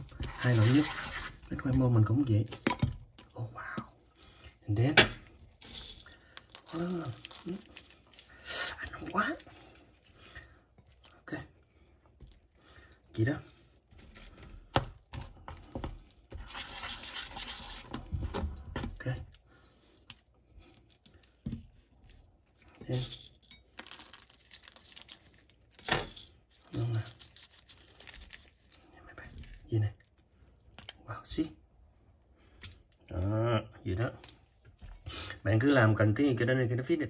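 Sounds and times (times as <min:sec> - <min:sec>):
rustling and crinkling: 0:13.4 - 0:30.4.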